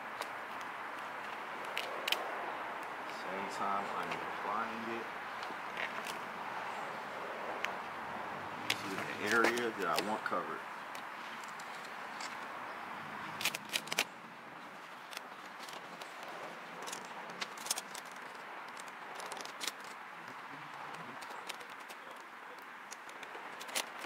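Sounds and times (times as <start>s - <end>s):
vinyl film crackling: 14.7s - 24.0s.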